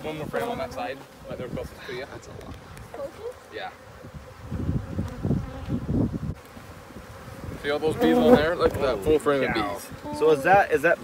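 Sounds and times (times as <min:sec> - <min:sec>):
honeybees buzzing: 0:00.0 - 0:11.0.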